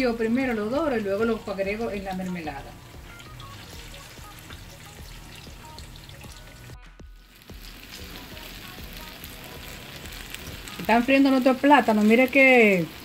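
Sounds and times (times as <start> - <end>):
plantain frying in hot oil: 0.0 - 13.0.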